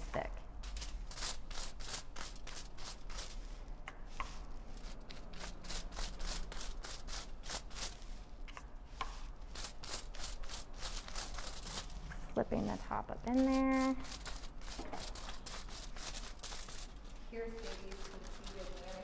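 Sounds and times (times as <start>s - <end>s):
tools scratching hair against foil: 0.6s - 3.5s, 4.7s - 8.2s, 9.2s - 12.0s, 12.6s - 19.0s.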